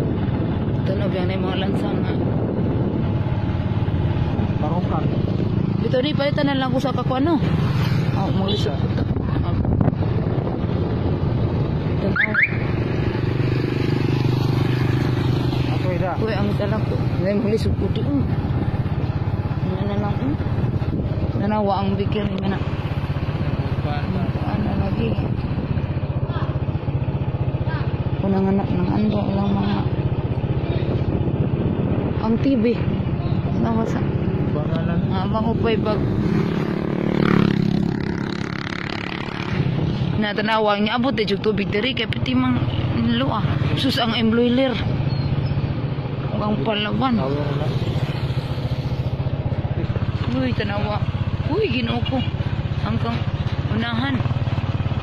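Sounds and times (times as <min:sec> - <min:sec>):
motorcycle engine running: 0:00.0 - 0:55.0
people talking: 0:00.8 - 0:02.2, 0:05.8 - 0:07.4, 0:21.4 - 0:22.7, 0:27.7 - 0:29.9, 0:40.2 - 0:44.8, 0:50.2 - 0:54.2.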